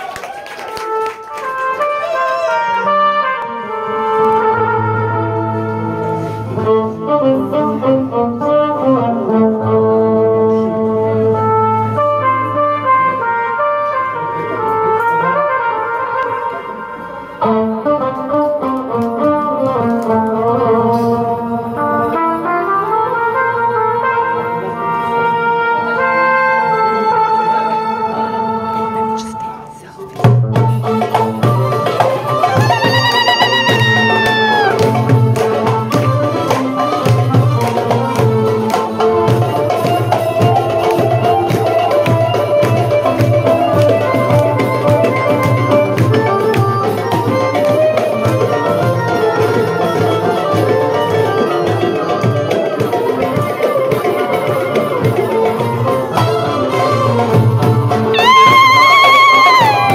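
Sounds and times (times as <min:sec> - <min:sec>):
oud playing: 0:30.3 - 0:58.4
bowed violin melody: 0:30.8 - 0:57.3.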